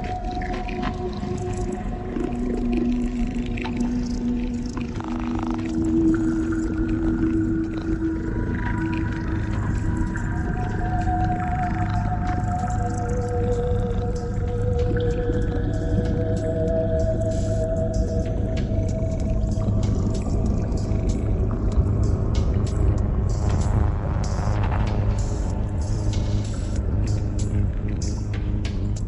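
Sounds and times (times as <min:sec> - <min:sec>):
ambient electronic drone music: 0:00.0 - 0:29.0
heavy bass: 0:00.0 - 0:29.0.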